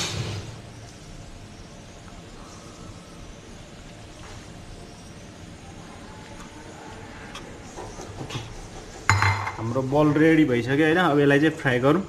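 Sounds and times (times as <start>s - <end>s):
steady background noise: 0.0s - 12.0s.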